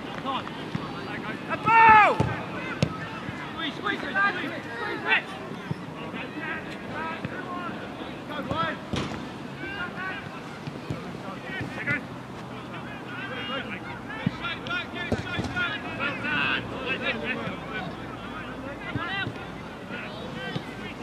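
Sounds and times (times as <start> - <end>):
distant players shouting: 0.0 - 21.0.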